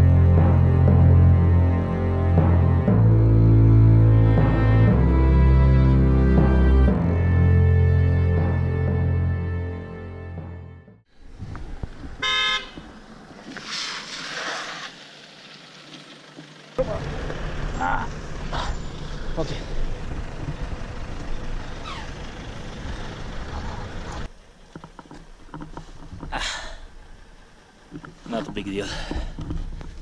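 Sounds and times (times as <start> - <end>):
low vehicle rumble: 0.0 - 30.0
street noises: 0.0 - 30.0
vehicle horn toot: 12.2 - 12.8.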